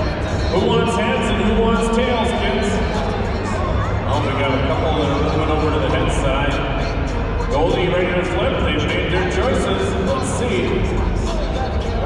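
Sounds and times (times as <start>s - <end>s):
crowd chatter: 0.0s - 12.0s
music playing: 0.0s - 12.0s.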